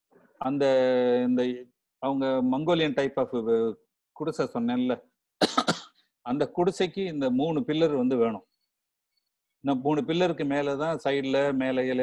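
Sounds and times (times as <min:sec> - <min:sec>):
man speaking: 0:00.4 - 0:05.0, 0:06.3 - 0:08.4
person coughing: 0:05.4 - 0:06.0.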